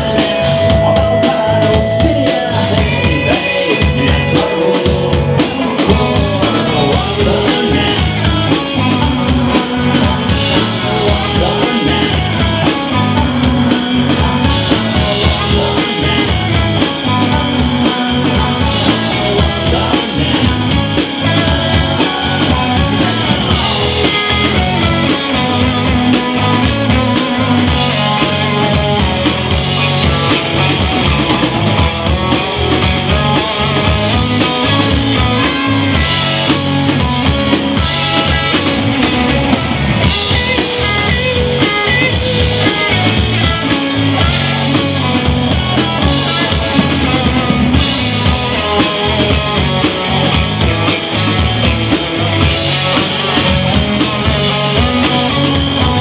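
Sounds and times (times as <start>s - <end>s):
drum kit: 0.0s - 56.0s
electric guitars: 0.0s - 56.0s.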